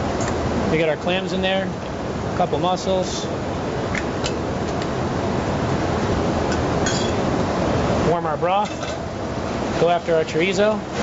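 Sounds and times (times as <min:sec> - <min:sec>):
kitchen background noise: 0:06.5 - 0:07.4, 0:08.4 - 0:09.1.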